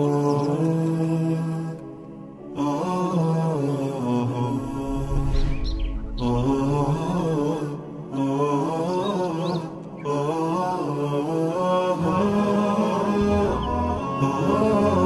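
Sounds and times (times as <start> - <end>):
chant-like singing: 0.0 - 15.0
high rising chirps: 4.6 - 7.4.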